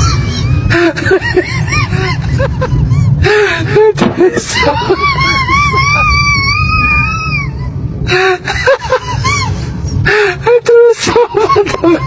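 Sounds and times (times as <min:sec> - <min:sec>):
low rumble: 0:00.0 - 0:12.0
high-pitched scream: 0:04.6 - 0:07.7.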